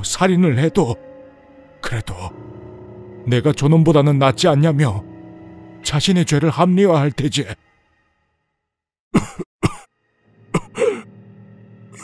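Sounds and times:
low music drone: 0.0s - 8.3s, 10.1s - 12.0s
man coughing harshly: 9.2s - 9.9s, 10.5s - 11.1s.

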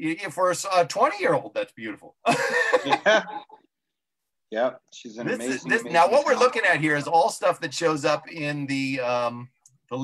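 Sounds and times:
person laughing: 2.3s - 3.6s.

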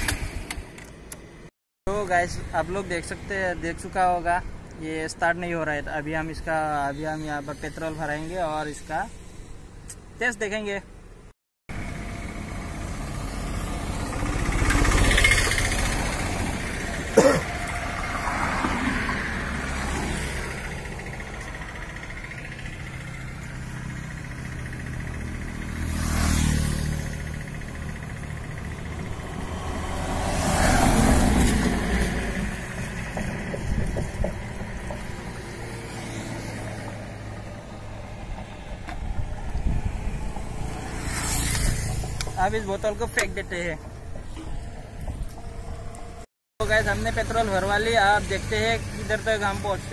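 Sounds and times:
vehicles passing by: 0.0s - 49.9s.

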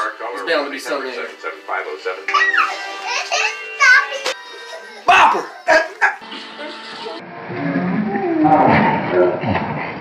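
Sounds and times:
background music: 0.0s - 7.5s.

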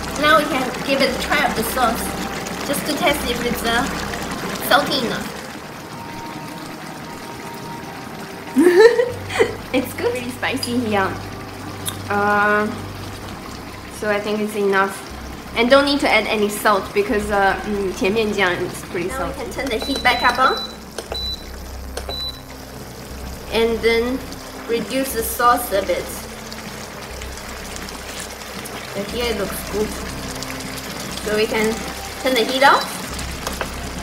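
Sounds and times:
hob control beeps: 19.6s - 22.5s.

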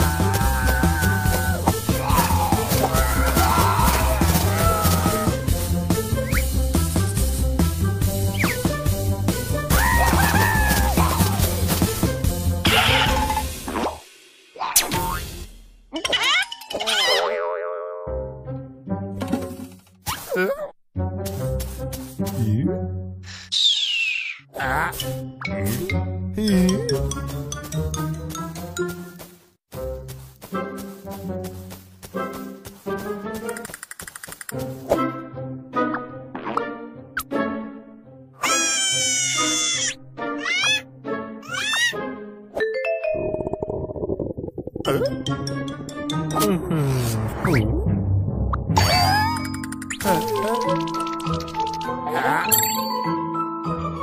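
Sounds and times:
background music: 0.0s - 14.2s, 16.6s - 20.0s, 21.0s - 23.4s, 24.5s - 33.9s, 34.5s - 43.7s, 44.8s - 54.0s
warbling sliding tones: 43.1s - 44.9s
light background music: 44.9s - 54.0s.

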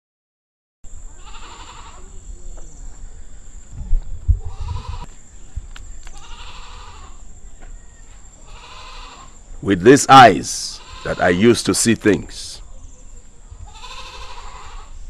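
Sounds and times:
animal bleating: 1.1s - 2.2s, 4.4s - 5.1s, 6.2s - 7.2s, 8.4s - 9.4s, 10.5s - 11.6s, 13.6s - 15.0s.

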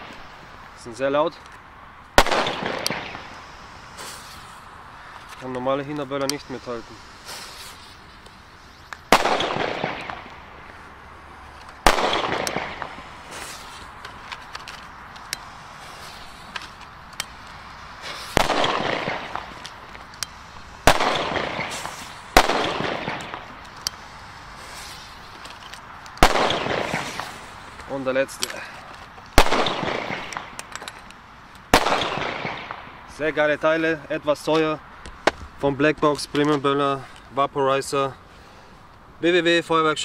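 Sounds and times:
firecracker bangs: 2.2s - 4.4s, 9.1s - 10.4s, 11.8s - 13.7s, 18.0s - 19.6s, 20.8s - 23.6s, 26.2s - 27.5s, 29.4s - 30.6s, 31.7s - 33.0s.

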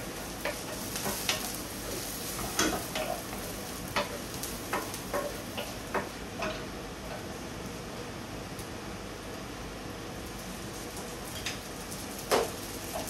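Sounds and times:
rice sizzling in a frying pan: 0.0s - 13.0s.

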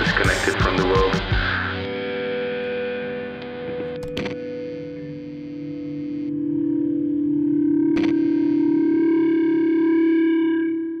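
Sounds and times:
distorted electric guitar note: 0.0s - 11.0s.

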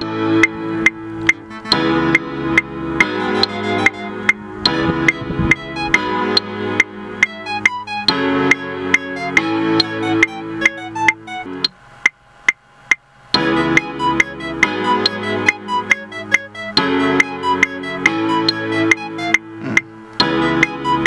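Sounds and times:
electronic drum beat: 0.0s - 11.8s, 12.5s - 21.0s
sustained synth chords: 0.0s - 11.8s, 13.4s - 21.0s.

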